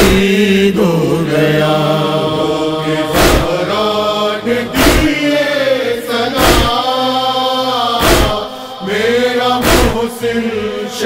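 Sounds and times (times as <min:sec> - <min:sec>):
chanting on long notes: 0:00.0 - 0:11.0
chest-beating thuds: 0:03.1 - 0:03.6, 0:04.8 - 0:05.2, 0:06.4 - 0:06.8, 0:08.0 - 0:08.5, 0:09.6 - 0:10.1.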